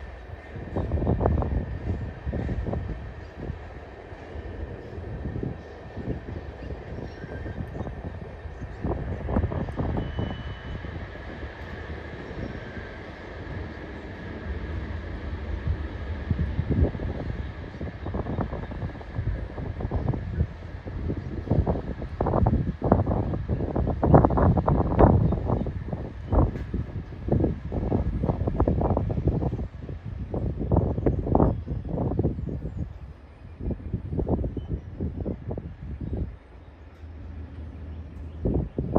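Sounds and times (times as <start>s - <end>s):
freight train rolling slowly: 0.0s - 38.9s
train cars knocking and clanking: 22.2s - 29.6s.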